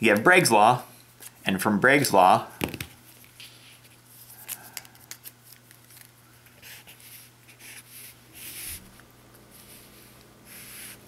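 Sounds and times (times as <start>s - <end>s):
low electrical hum: 0.0s - 11.0s
marker pen scratching paper: 6.6s - 8.9s, 9.6s - 11.0s.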